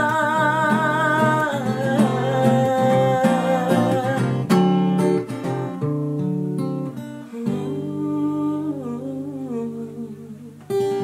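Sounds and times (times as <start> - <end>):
man humming: 0.0 - 4.6, 7.2 - 11.0
acoustic guitar chord ringing: 0.0 - 11.0.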